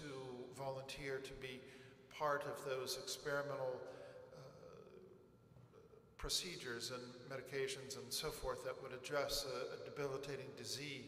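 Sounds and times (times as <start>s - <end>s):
man's voice reverberating: 0.0s - 11.0s.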